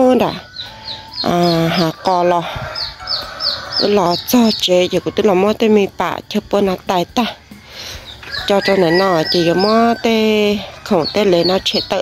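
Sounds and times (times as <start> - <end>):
chickens calling: 0.0 - 12.0
high falling peeps: 7.9 - 12.0.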